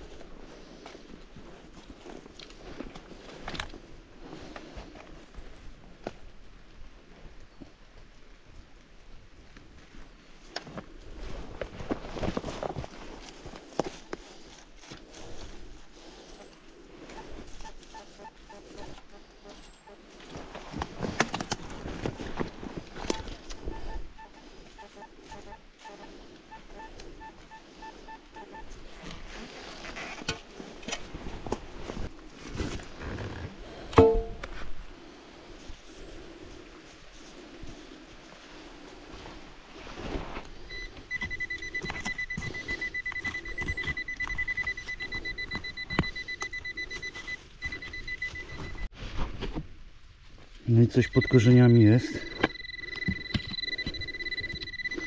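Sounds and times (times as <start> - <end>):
digging in soil: 10.4 - 55.0
metal detector pulsing beep: 17.1 - 19.0, 23.0 - 28.8, 40.7 - 48.9, 50.8 - 55.0
sharp metallic strike: 34.0 - 34.4
pinpointer steady high tone: 40.7 - 48.9, 50.7 - 55.0.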